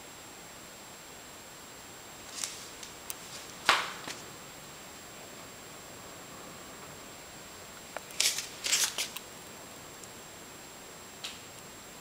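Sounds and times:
faint high-pitched whine: 0:00.0 - 0:12.0
sharp rustling scrapes: 0:08.1 - 0:09.2.

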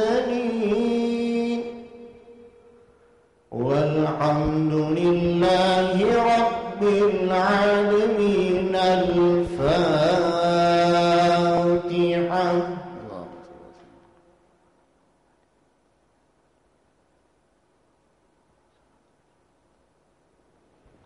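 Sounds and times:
man reciting melodically: 0:00.0 - 0:02.8, 0:03.5 - 0:14.1.

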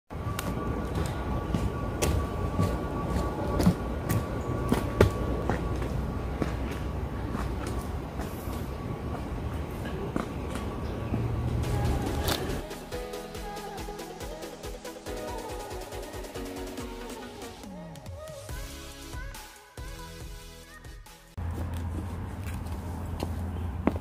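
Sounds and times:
footsteps on forest trail: 0:00.4 - 0:11.3, 0:21.4 - 0:24.0
music: 0:11.4 - 0:21.4.

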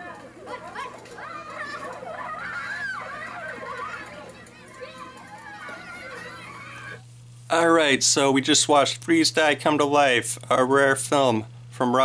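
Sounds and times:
children calling and shouting: 0:00.0 - 0:07.0.

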